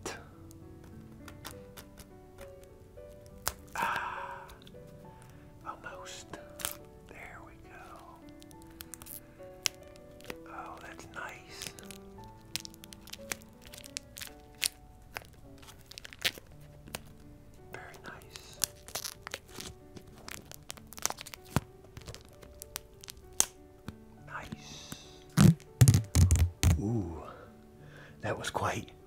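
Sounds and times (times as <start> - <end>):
soft background music: 0.0 - 29.0
plastic-wrapped sketch pad crinkling: 7.9 - 17.3, 18.0 - 23.5
loud heavy thumps: 25.4 - 26.8.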